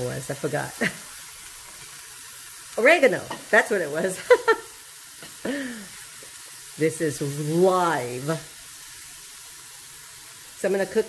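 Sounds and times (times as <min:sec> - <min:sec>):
vegetables sizzling in a skillet: 0:00.0 - 0:11.0
woman's voice: 0:02.8 - 0:04.5, 0:06.8 - 0:08.5, 0:10.6 - 0:11.0.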